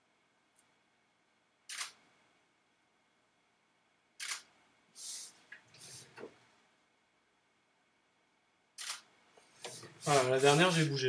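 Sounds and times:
camera shutter firing: 0:01.7 - 0:02.0, 0:04.2 - 0:04.5, 0:08.8 - 0:09.1
soft noises: 0:05.0 - 0:06.6, 0:09.4 - 0:11.0.

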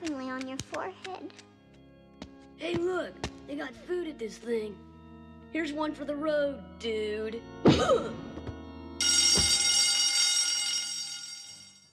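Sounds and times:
bell ringing: 0:09.0 - 0:11.9.

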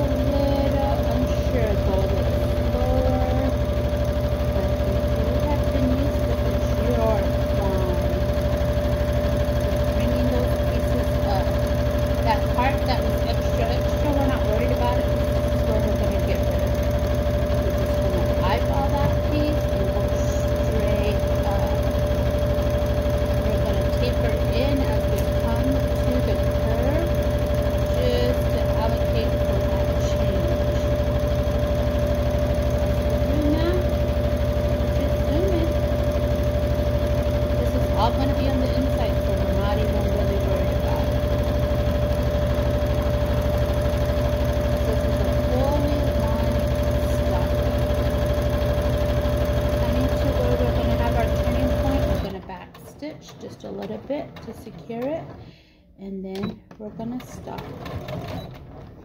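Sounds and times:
sewing machine running: 0:00.0 - 0:59.0.

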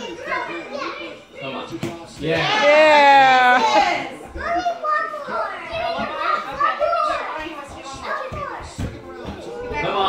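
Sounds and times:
children talking and calling out: 0:00.0 - 0:01.6, 0:02.4 - 0:10.0.

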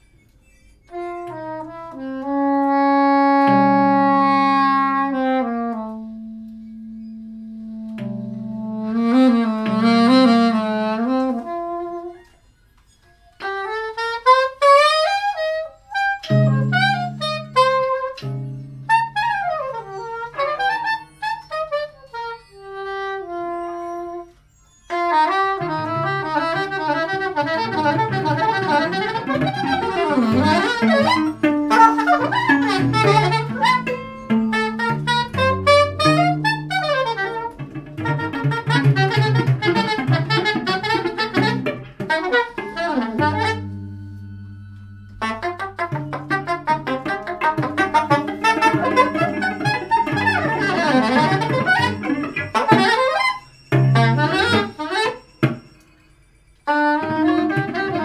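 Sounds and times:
soprano saxophone: 0:00.0 - 0:58.0
tapped string instrument: 0:25.6 - 0:55.9, 0:57.0 - 0:58.0.

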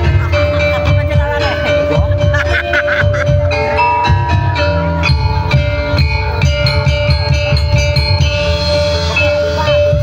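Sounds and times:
drums: 0:00.0 - 0:10.0
metal keyed percussion: 0:00.0 - 0:10.0.

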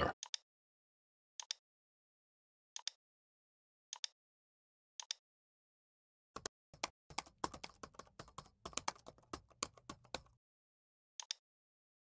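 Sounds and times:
faint computer keyboard typing: 0:06.4 - 0:10.4.

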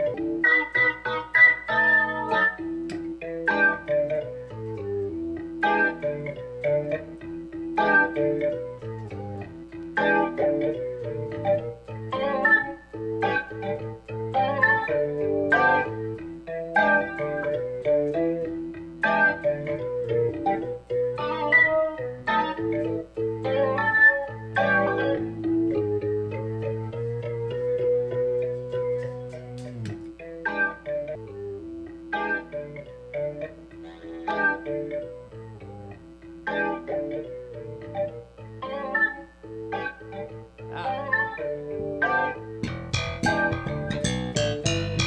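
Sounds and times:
electric guitar with organ-like tones: 0:00.0 - 0:45.0.

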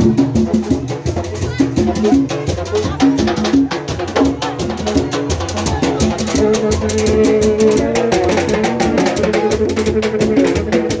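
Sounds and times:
fast dense drumming: 0:00.0 - 0:11.0.

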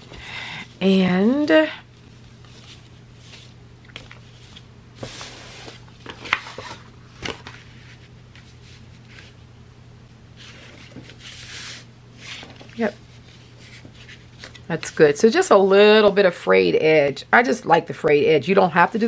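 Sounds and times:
steady low hum: 0:00.0 - 0:19.0
fabric and paper rustling: 0:01.4 - 0:09.4, 0:10.4 - 0:16.2.

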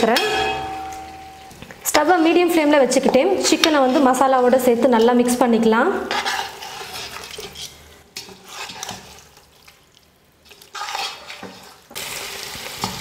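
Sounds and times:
spatula scraping a pot: 0:06.0 - 0:09.4, 0:10.5 - 0:11.9
frying sizzle: 0:08.5 - 0:13.0.

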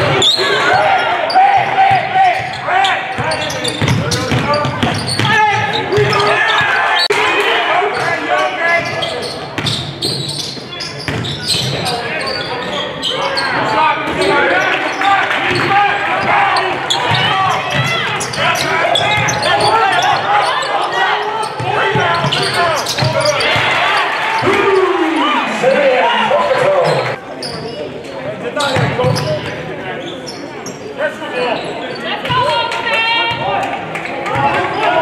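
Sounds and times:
voices echoing in gym: 0:00.0 - 0:35.0.

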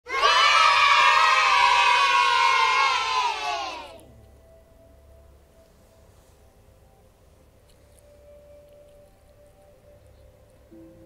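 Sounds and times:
children cheering: 0:00.1 - 0:04.0.

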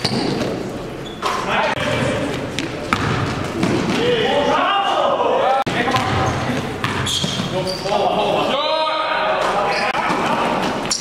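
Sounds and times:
sneakers squeaking: 0:00.0 - 0:04.6, 0:05.7 - 0:08.4, 0:09.4 - 0:11.0
basketball bouncing on hardwood: 0:02.9 - 0:04.0.

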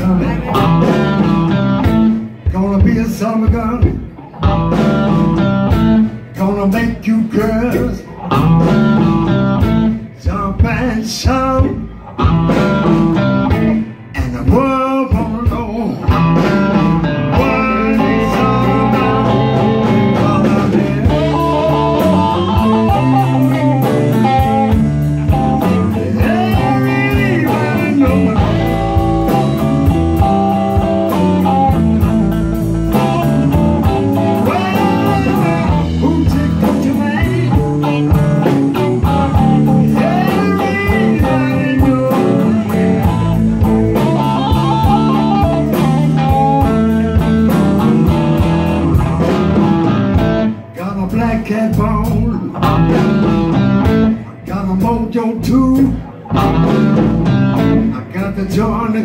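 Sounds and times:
drums: 0:00.0 - 0:59.0
electric bass: 0:00.0 - 0:59.0
electric guitar lead: 0:00.0 - 0:59.0.

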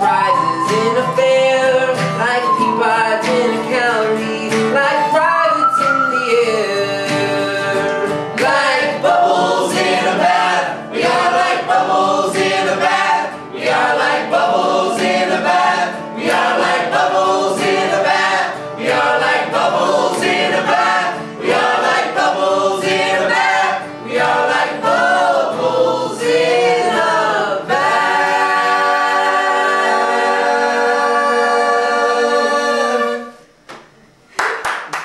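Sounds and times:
group singing a folk song: 0:00.0 - 0:33.6
acoustic guitar strumming: 0:00.0 - 0:34.3.

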